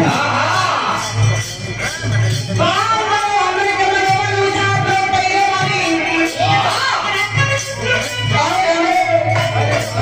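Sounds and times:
live musical accompaniment: 0.0s - 10.0s.

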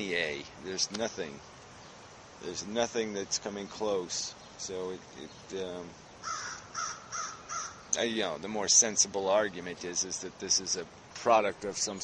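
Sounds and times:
crow cawing: 6.2s - 7.9s.

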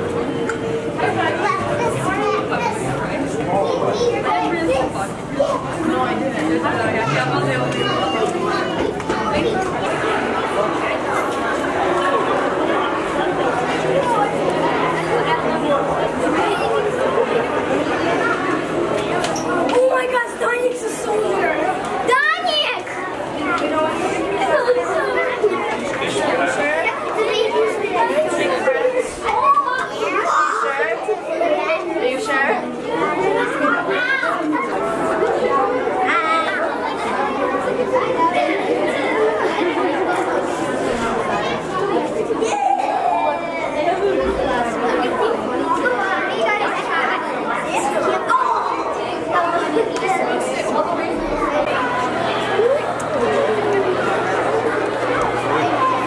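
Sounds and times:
children chattering: 0.0s - 56.0s.

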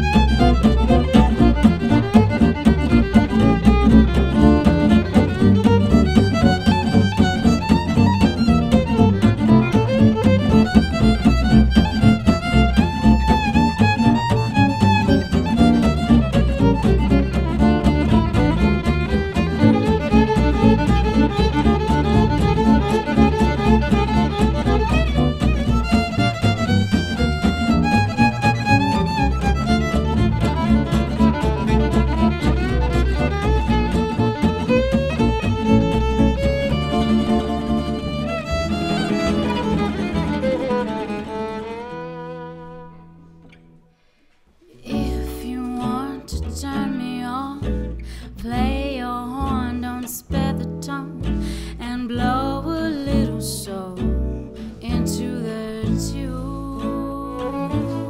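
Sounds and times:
double bass: 0.0s - 43.9s, 44.6s - 58.0s
rhythm guitar: 0.0s - 58.0s
violin solo: 0.0s - 58.0s.

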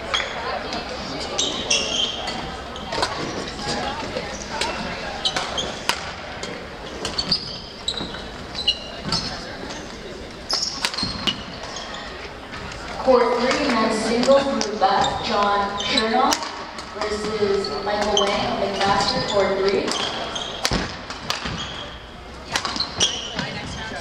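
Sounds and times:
murmur of voices: 0.0s - 24.0s
shoes squeaking on wooden floor: 1.2s - 24.0s
racket hitting shuttlecock: 5.3s - 6.2s, 19.9s - 21.8s, 22.5s - 23.1s.

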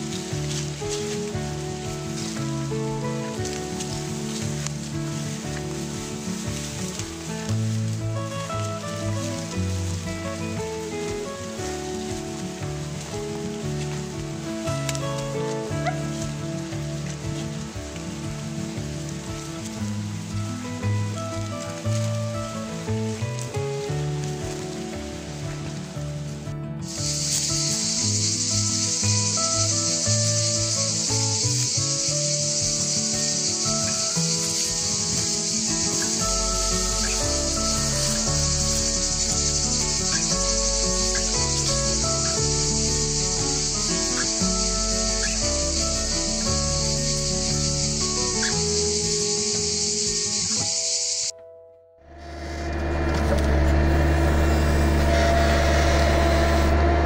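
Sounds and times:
cicadas chorus: 0.0s - 51.3s, 52.1s - 57.0s
background music: 0.0s - 57.0s.

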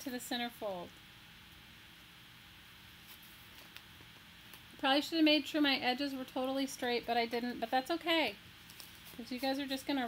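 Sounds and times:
woman's voice: 0.0s - 0.9s, 4.8s - 8.4s, 9.2s - 10.0s.

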